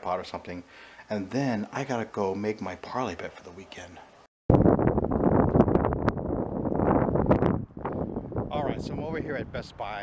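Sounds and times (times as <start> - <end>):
wind buffeting microphone: 4.5 - 10.0.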